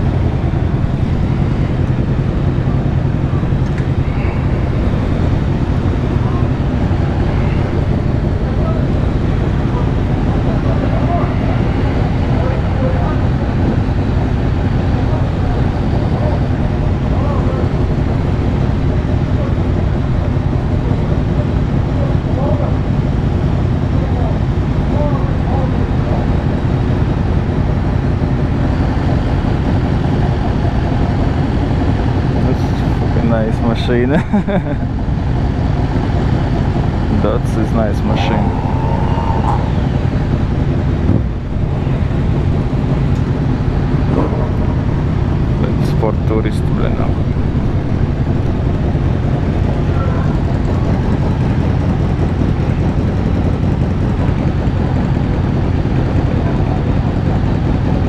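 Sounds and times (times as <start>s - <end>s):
motorcycle engine running at low revs: 0.0s - 58.0s.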